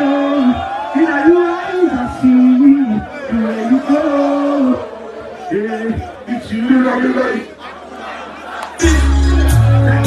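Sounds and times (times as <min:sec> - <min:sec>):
concert crowd noise: 0:00.0 - 0:10.0
loud music with heavy bass: 0:08.8 - 0:10.0.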